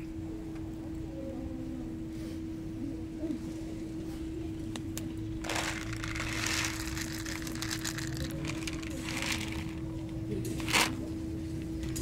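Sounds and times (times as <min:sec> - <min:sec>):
kibble rattling onto paving stones: 0:05.4 - 0:10.0.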